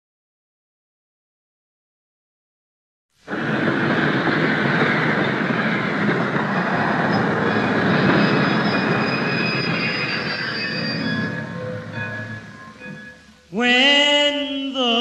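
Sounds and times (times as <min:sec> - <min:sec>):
train rumbling and squealing: 0:03.2 - 0:14.6.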